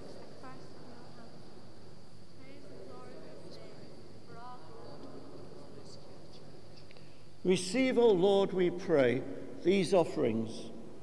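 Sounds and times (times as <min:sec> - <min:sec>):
congregation speaking: 0:00.0 - 0:01.8, 0:02.4 - 0:10.9
large church room noise: 0:00.0 - 0:11.0
steady high-pitched whine: 0:00.0 - 0:11.0.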